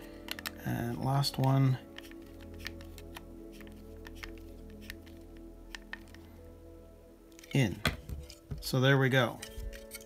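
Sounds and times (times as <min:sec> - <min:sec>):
quiet background music: 0:00.0 - 0:10.0
screwdriver clicking into plastic: 0:00.2 - 0:00.6.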